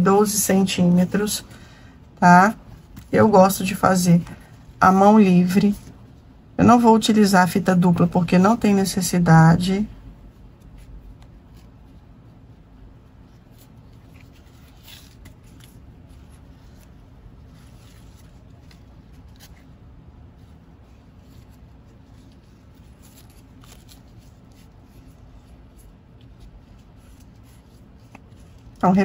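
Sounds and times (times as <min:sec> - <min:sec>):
low steady hum: 0:00.0 - 0:29.0
ribbon rustling: 0:00.2 - 0:07.0, 0:09.6 - 0:29.0.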